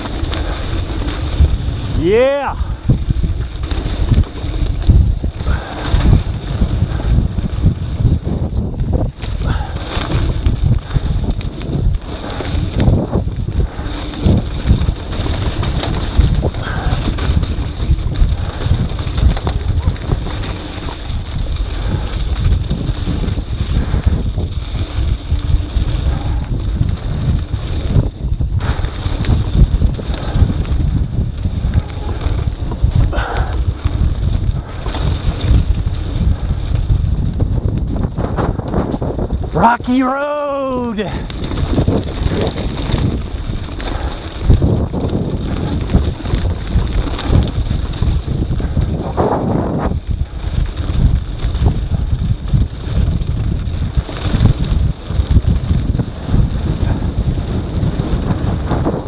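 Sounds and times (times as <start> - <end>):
bike knocks and rattles: 0.0 - 39.6, 41.2 - 59.0
wind buffeting microphone: 0.0 - 59.0.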